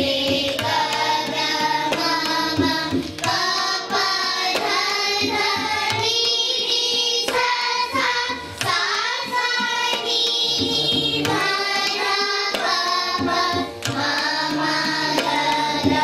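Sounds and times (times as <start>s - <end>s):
children singing together: 0.0s - 16.0s
tabla: 0.0s - 16.0s.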